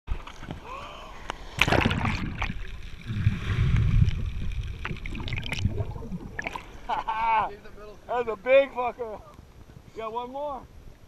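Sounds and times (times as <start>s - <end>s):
water splashing: 1.3s - 8.5s
muffled underwater rumble: 1.7s - 7.1s.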